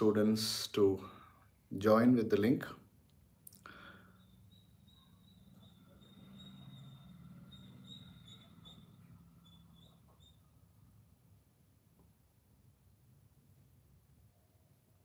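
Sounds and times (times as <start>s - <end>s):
faint low hum: 0.0s - 15.0s
high wavering chirping tone: 3.8s - 11.1s.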